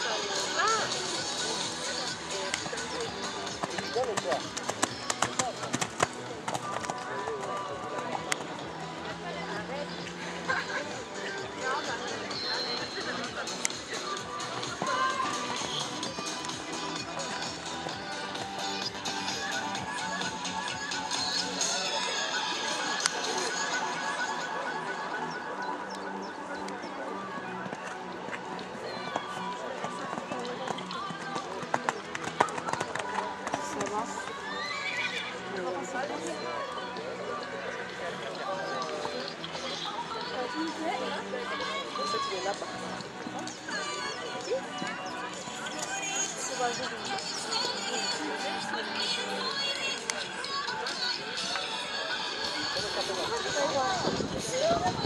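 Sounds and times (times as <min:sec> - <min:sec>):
faint music: 0:00.0 - 0:55.0
people talking in background: 0:00.0 - 0:55.0.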